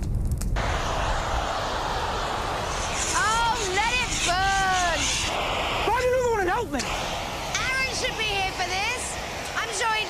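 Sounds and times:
steady hiss: 0.6 - 10.0.

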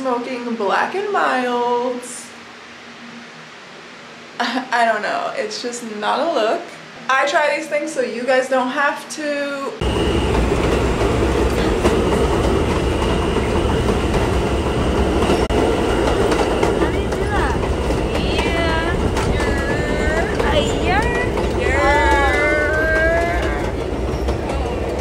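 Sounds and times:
train rumble and rattle: 9.8 - 25.0
voices calling out: 9.8 - 25.0.

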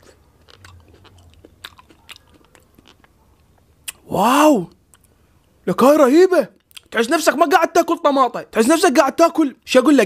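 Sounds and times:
person chewing tomato: 0.0 - 4.1, 6.6 - 6.9.

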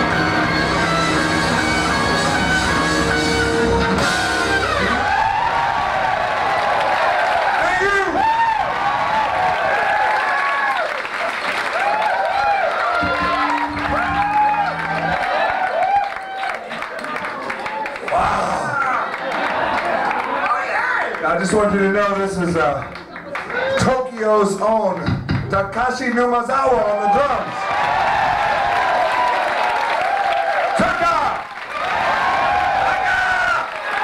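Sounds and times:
live rock band playing: 0.0 - 5.5, 12.8 - 16.0
audience cheering and whooping: 0.0 - 21.2, 23.0 - 24.0, 26.8 - 34.0.

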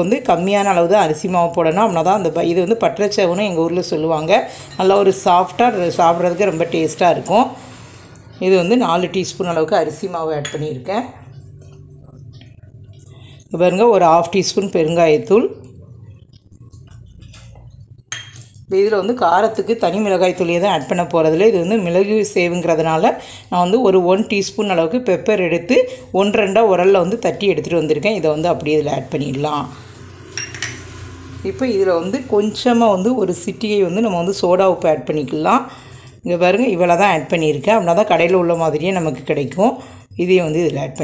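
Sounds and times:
low steady hum: 0.0 - 41.0
metal cups clinking: 16.8 - 18.6, 30.3 - 31.0
kitchen vessel clinking: 18.1 - 18.6, 30.3 - 31.0.

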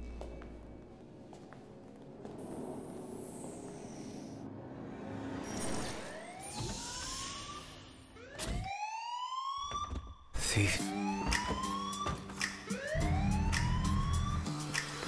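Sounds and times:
security alarm siren wailing: 6.0 - 14.8
low pulsing beat: 12.7 - 14.8.

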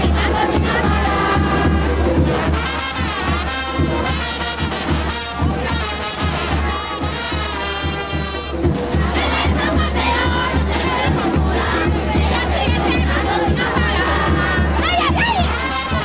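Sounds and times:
brass band music: 0.0 - 16.0
crowd shouting and cheering: 0.0 - 16.0.

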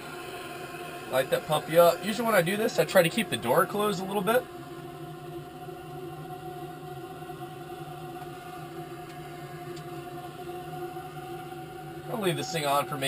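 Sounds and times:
butane torch hissing: 0.0 - 13.0.

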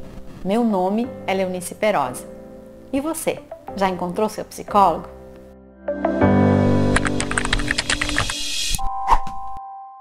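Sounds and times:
electronic intro music: 5.5 - 9.8
keyboard typing clicks: 6.9 - 8.4.

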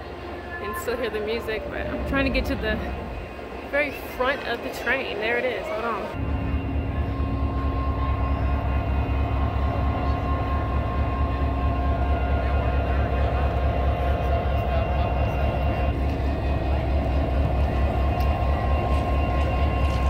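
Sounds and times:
diesel locomotive idling: 0.0 - 20.0.

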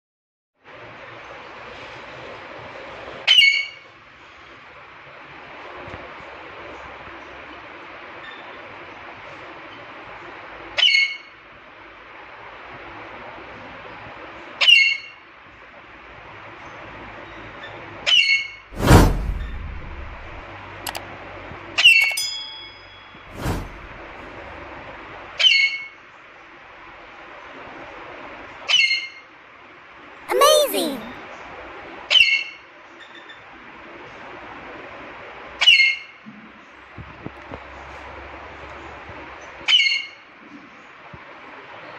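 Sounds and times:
brief rushes of noise: 18.8 - 21.0, 23.3 - 24.2.

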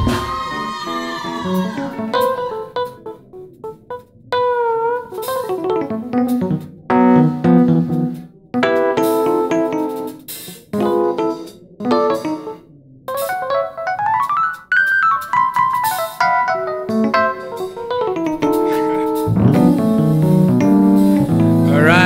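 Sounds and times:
electronic keyboard chords and runs: 1.4 - 22.0.

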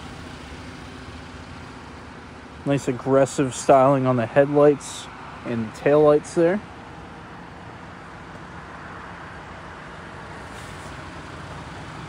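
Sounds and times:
motor vehicle hum: 0.0 - 12.0.

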